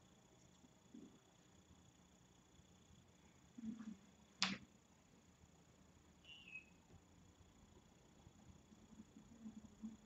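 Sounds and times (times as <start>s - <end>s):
sharp click: 4.4s - 4.7s
faint high chirp: 6.2s - 6.9s.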